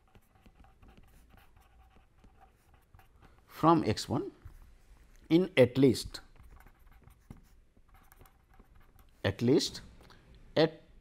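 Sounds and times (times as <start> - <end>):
pen scratching on paper: 0.0 - 3.4, 6.2 - 9.2.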